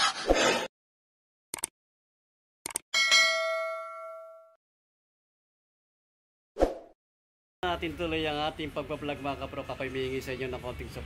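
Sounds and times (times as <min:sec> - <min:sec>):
notification bell ding: 0:03.0 - 0:04.6.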